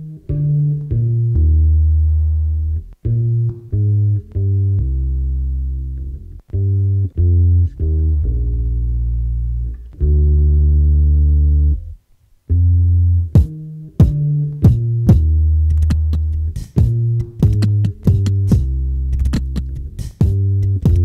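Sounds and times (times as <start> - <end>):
deep electronic bass line: 0.0 - 21.0.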